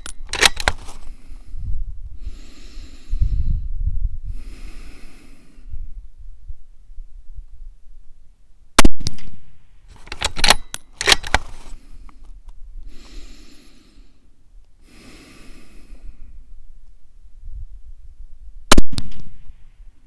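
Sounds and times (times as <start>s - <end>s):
slow breathing: 0.7s - 6.0s, 11.4s - 16.6s
rifle shot: 8.8s - 11.4s, 18.7s - 19.6s.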